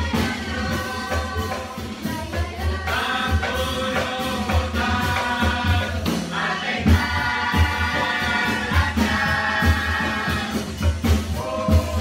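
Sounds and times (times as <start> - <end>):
children singing in unison: 0.0 - 12.0
loud drum hit: 0.0 - 12.0.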